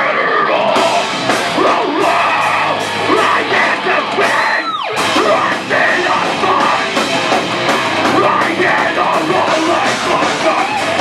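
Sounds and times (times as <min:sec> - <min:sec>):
screamed vocals: 0:00.0 - 0:06.9, 0:08.2 - 0:11.0
distorted electric guitars: 0:00.0 - 0:11.0
drums: 0:00.0 - 0:11.0.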